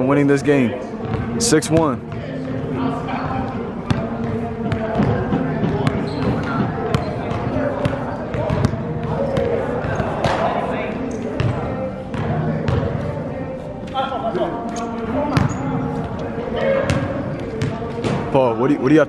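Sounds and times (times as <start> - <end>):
echoing background voices: 0.0 - 19.0
basketball bouncing on wooden floor: 5.0 - 10.4, 11.4 - 12.9.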